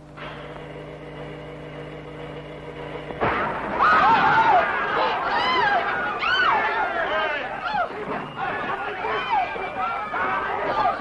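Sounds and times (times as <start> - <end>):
crowd of high voices: 3.5 - 11.0.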